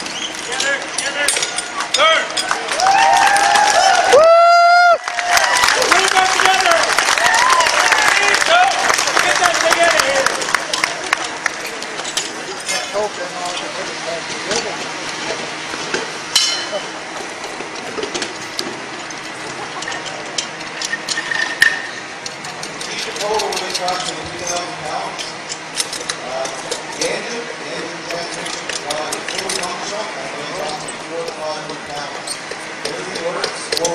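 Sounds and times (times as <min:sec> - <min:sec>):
crowd voices: 0:00.0 - 0:33.9
metal parts and tools clinking: 0:00.2 - 0:02.6, 0:11.6 - 0:13.7, 0:15.9 - 0:16.8, 0:17.4 - 0:27.2, 0:28.0 - 0:33.9
dense patter of clicks: 0:07.8 - 0:12.3
bright ringing clink: 0:16.4 - 0:16.8.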